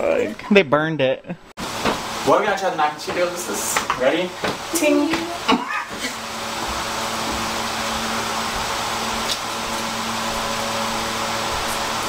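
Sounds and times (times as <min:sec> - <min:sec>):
steady whirring: 0:02.9 - 0:12.0.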